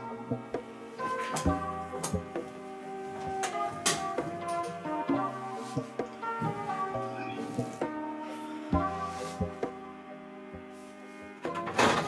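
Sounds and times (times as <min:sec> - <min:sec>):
instrumental music with percussive beat: 0:00.0 - 0:09.9.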